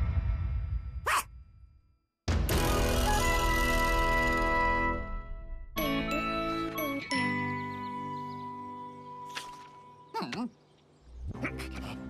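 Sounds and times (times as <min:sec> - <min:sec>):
cartoon dog yelping bark: 0:01.1 - 0:01.3
cartoon theme music: 0:02.3 - 0:08.7.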